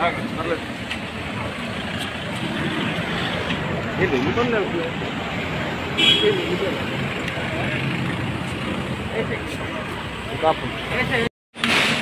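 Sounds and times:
cars driving past: 0:00.0 - 0:11.9
people's voices: 0:01.3 - 0:11.3.

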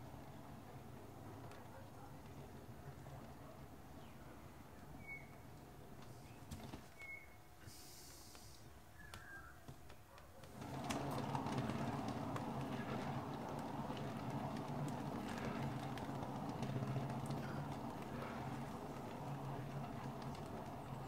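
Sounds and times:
canvas spinner whirring: 0:10.4 - 0:21.0.

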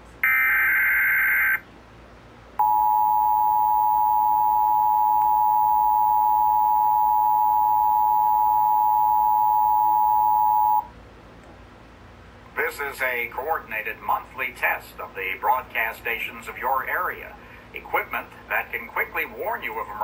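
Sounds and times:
two-tone alert signal: 0:00.2 - 0:01.6, 0:02.6 - 0:10.8.

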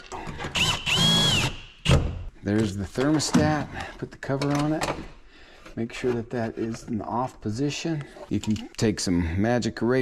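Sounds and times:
cordless drill driving screw: 0:00.2 - 0:01.6.

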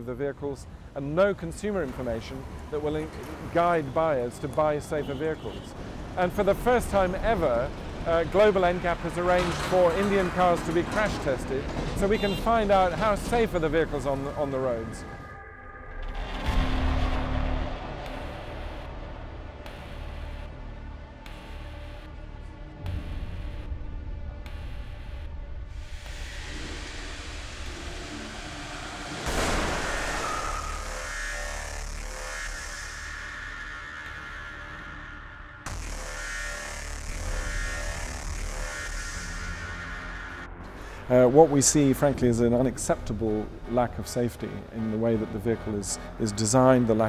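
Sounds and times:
car rolling low rumble: 0:06.0 - 0:15.3
electronic music with deep bass: 0:06.3 - 0:47.0.

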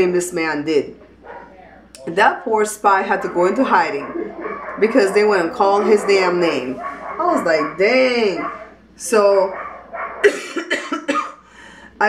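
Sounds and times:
woman coughing: 0:10.2 - 0:11.5.

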